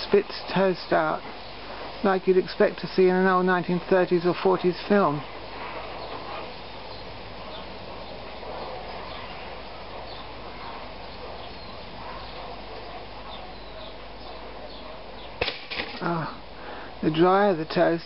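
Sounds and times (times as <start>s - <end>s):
steady low hiss: 0.0s - 18.0s.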